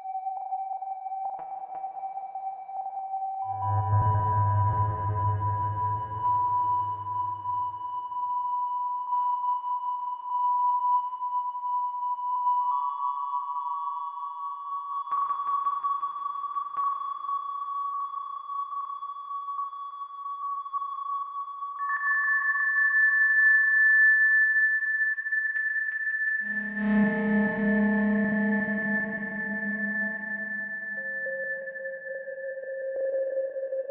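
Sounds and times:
low synth note: 0:03.5 - 0:07.6.

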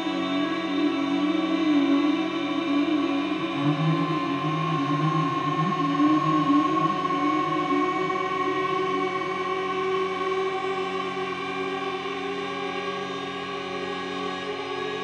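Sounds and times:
low wavering drone: 0:00.0 - 0:15.0.

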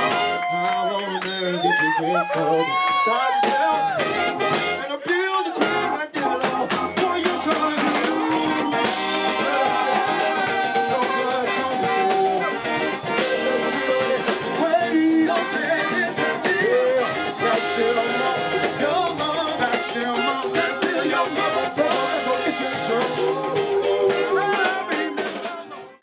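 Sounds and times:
drum kit: 0:00.0 - 0:00.8, 0:02.9 - 0:26.0
guitars: 0:03.0 - 0:26.0.

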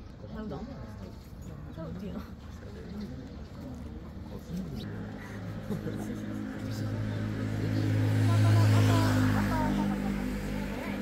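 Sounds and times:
vehicle engine passing by: 0:04.5 - 0:11.0.

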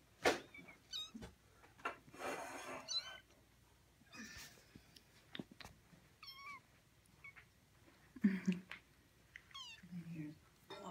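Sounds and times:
kitten mewing: 0:06.2 - 0:06.6.

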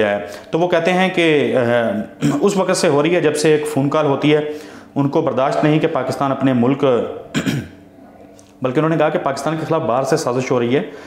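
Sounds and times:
man speaking: 0:00.0 - 0:07.4, 0:08.6 - 0:11.0
man clearing his throat: 0:02.2 - 0:02.5, 0:07.3 - 0:07.8.

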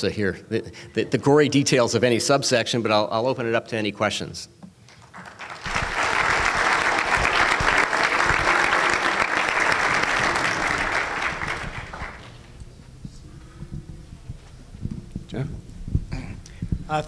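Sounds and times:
audience applauding: 0:04.9 - 0:12.6.

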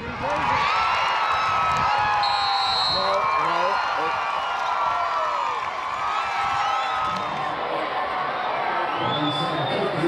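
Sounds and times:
spectators cheering and yelling: 0:00.0 - 0:10.0
high steady whistle: 0:02.2 - 0:03.1.

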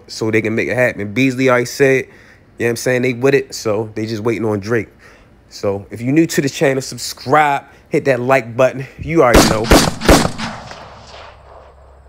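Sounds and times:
loud bang with echo: 0:09.3 - 0:12.0.

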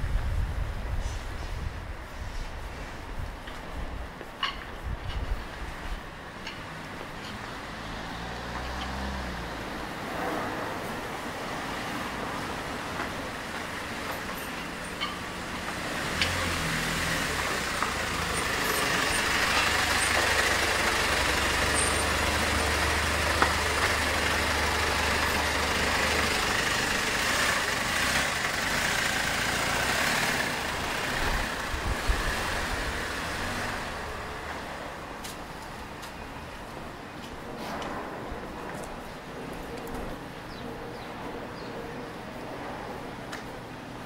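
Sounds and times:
street traffic: 0:00.0 - 0:44.0
truck engine running: 0:13.4 - 0:34.4.

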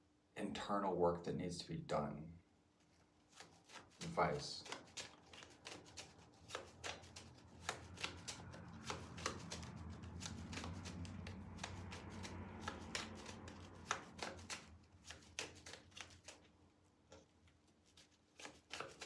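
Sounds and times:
cards being shuffled: 0:02.8 - 0:16.5, 0:17.1 - 0:19.0.

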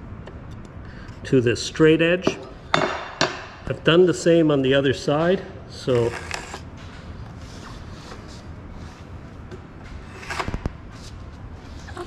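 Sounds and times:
sharp wooden knocks: 0:02.8 - 0:03.5.

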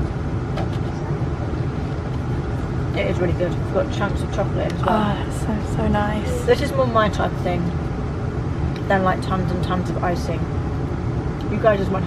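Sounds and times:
train rumbling inside carriage: 0:00.0 - 0:12.0.

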